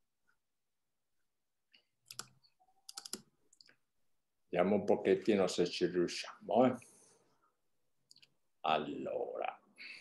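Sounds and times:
mouse and keyboard clicks: 2.0 - 3.7.

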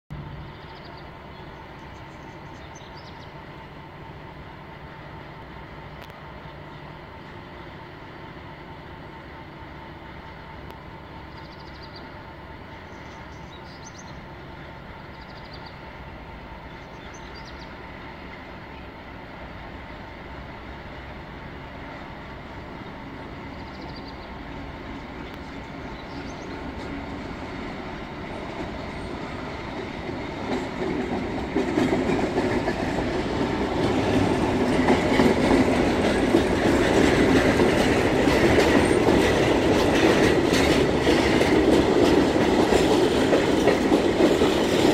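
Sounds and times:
diesel locomotive engine rumbling: 0.1 - 44.9.

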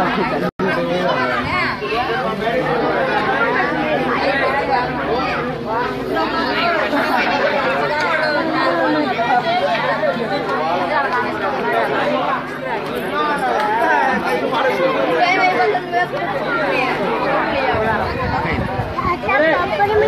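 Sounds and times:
crowd chatter: 0.0 - 20.0.

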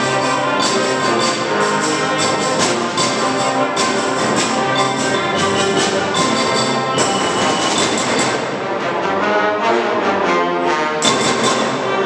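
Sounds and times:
concert band brass chords: 0.0 - 12.0.

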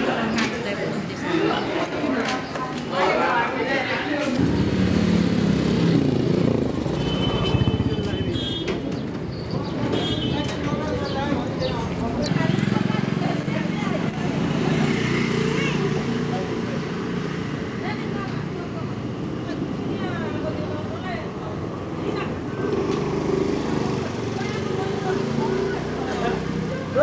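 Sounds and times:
people talking: 0.0 - 27.0
vehicle traffic hum: 0.0 - 27.0.

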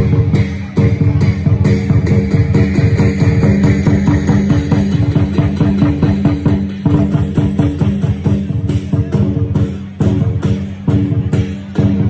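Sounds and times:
loud music with fast drumbeat: 0.0 - 12.0.

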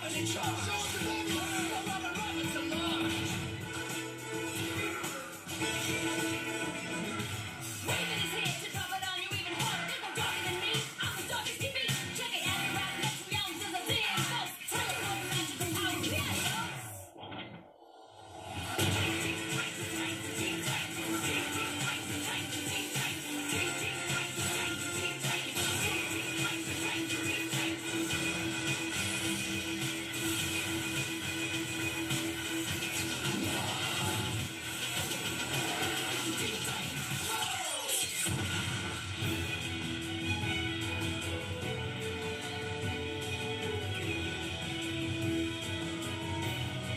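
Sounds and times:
cartoon song from television: 0.0 - 46.9.

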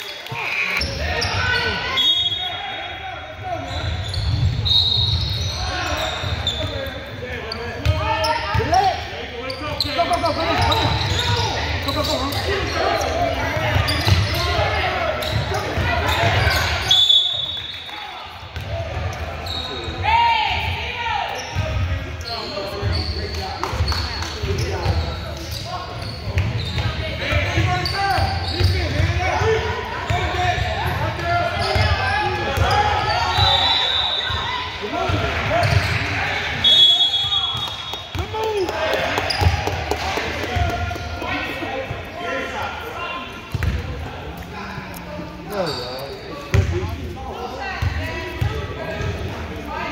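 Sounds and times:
referee's whistle: 0.5 - 3.0, 3.6 - 6.7, 16.2 - 18.0, 32.6 - 34.7, 36.5 - 38.3.

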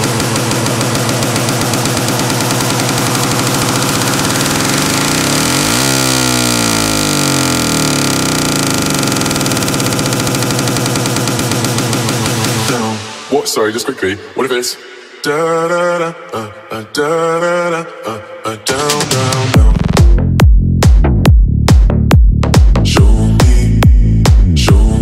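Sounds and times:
pulsing buzzing synth: 0.0 - 13.3
synth pitch sweep: 0.0 - 15.3.

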